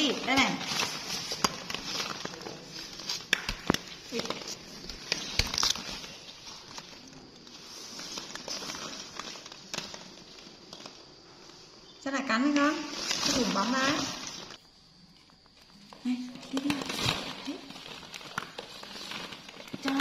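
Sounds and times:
plastic balls rustling and clicking: 0:00.0 - 0:20.0.

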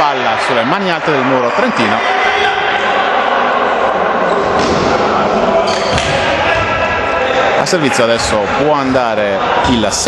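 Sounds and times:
spectators shouting: 0:00.0 - 0:10.0
volleyball bouncing on court: 0:05.7 - 0:06.8.

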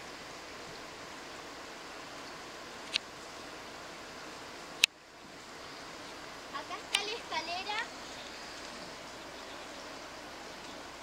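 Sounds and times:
river rushing: 0:00.0 - 0:11.0.

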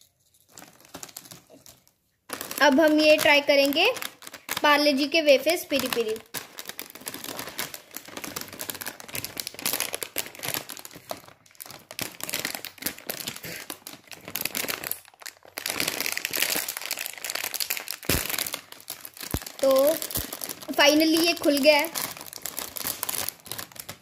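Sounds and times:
snack packet crinkling: 0:00.4 - 0:24.0.

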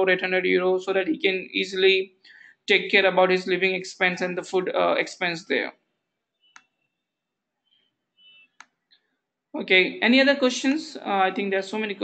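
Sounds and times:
computer mouse click: 0:06.5 - 0:06.8, 0:08.6 - 0:09.0.

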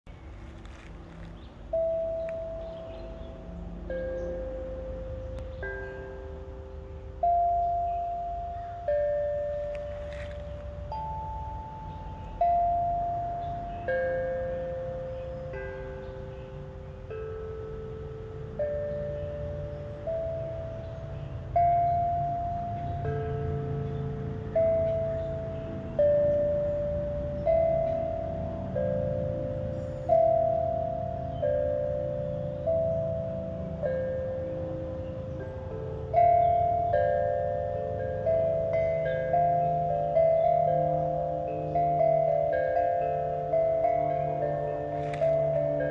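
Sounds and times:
steel tongue drum melody: 0:00.1 - 0:45.9.

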